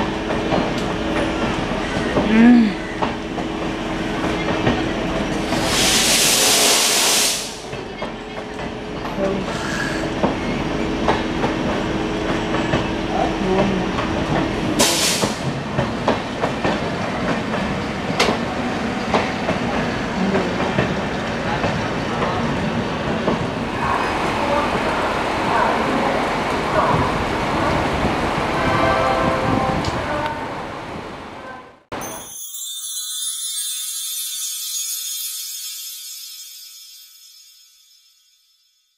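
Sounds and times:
train rumble: 0:00.0 - 0:31.5.

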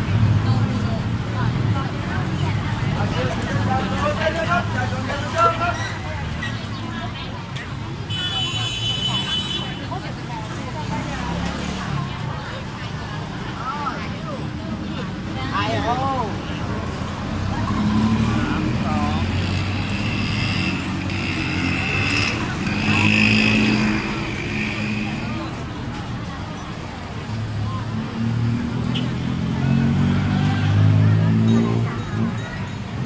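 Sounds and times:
crowd chatter: 0:00.0 - 0:33.0
vehicle engines passing: 0:00.0 - 0:33.0.

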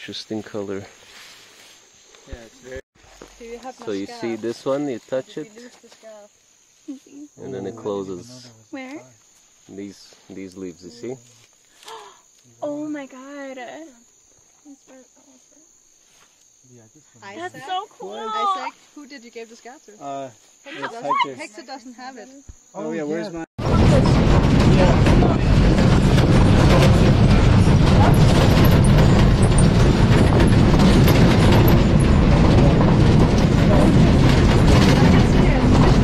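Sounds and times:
faint insects trilling: 0:00.0 - 0:23.5
bus body and fittings rattling: 0:23.6 - 0:36.0
bus engine and road rumble: 0:23.6 - 0:36.0.

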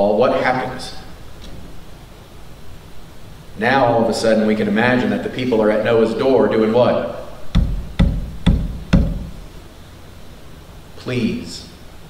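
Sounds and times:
knocks on wood: 0:07.5 - 0:09.4.

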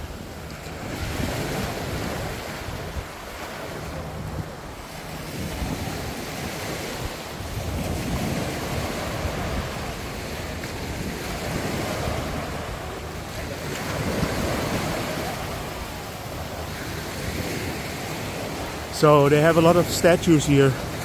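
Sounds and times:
wind buffeting microphone: 0:00.0 - 0:19.0
small waves breaking on sand: 0:00.0 - 0:21.0.

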